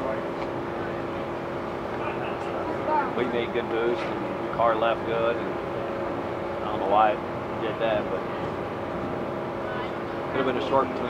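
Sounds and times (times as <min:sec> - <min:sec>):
people talking indistinctly: 0:00.0 - 0:05.6, 0:06.6 - 0:08.9, 0:09.5 - 0:11.0
mechanical hum: 0:00.0 - 0:11.0.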